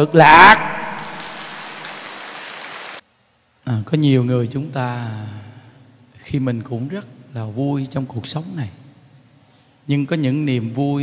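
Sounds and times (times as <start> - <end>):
audience applauding: 0.7 - 3.0.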